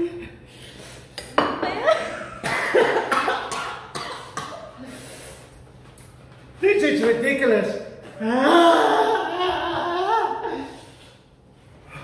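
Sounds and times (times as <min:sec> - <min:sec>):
people coughing: 0:02.3 - 0:04.8
man and woman laughing: 0:08.2 - 0:10.8.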